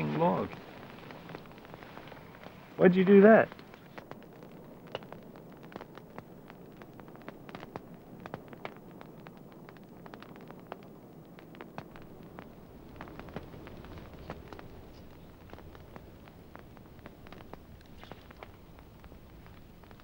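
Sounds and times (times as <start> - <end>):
campfire crackling: 0.0 - 20.0
faint steady background noise: 0.0 - 20.0.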